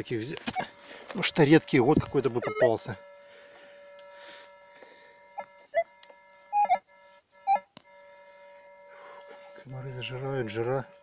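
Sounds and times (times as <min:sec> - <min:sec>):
metal detector threshold hum: 0:00.0 - 0:11.0
metal detector signal beeps: 0:02.1 - 0:02.9, 0:05.4 - 0:06.8, 0:07.4 - 0:07.7.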